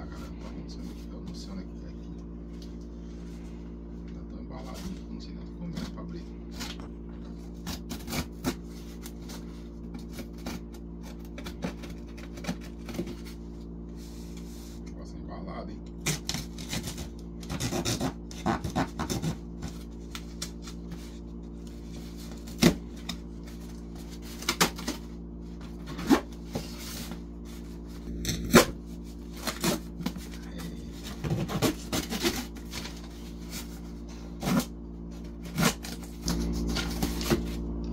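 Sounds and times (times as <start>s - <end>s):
air conditioner humming: 0.0s - 37.9s
cardboard box being opened: 35.4s - 37.6s.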